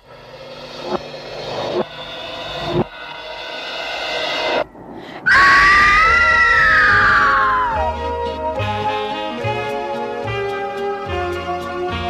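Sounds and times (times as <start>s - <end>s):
suspense music: 0.0s - 12.0s
woman screaming: 5.2s - 8.1s.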